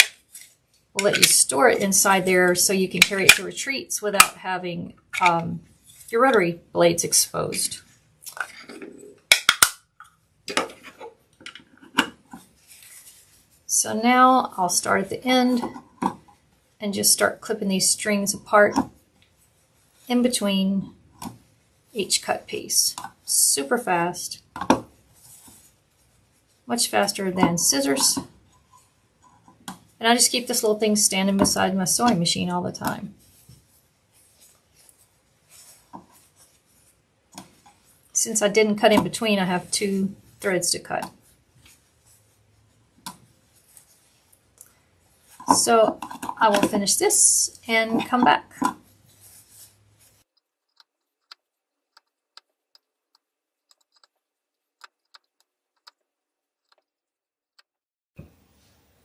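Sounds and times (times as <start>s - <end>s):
fabric rustling: 5.6s - 6.3s, 10.7s - 13.7s, 24.9s - 26.8s, 33.0s - 38.2s, 40.2s - 46.8s, 48.8s - 50.3s.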